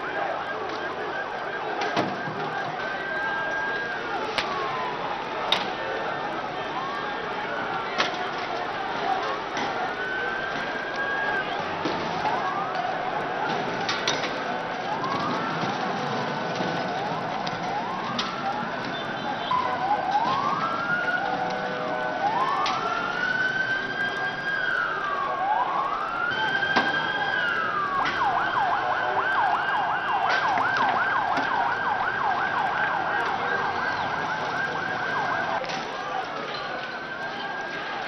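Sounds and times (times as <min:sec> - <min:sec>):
police siren wailing and yelping: 0:00.0 - 0:38.0.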